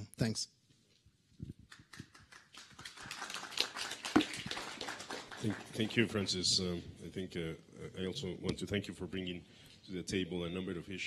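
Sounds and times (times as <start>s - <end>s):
audience applause: 1.8s - 6.4s.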